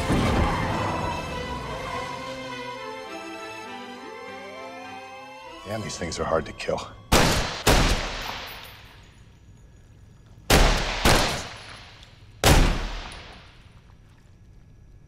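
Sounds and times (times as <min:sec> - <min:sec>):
handgun shots echoing: 0:07.1 - 0:08.8, 0:10.5 - 0:13.4.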